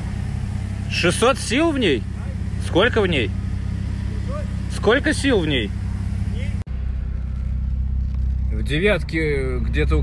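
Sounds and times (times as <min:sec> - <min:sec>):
car engines idling: 0:00.0 - 0:10.0.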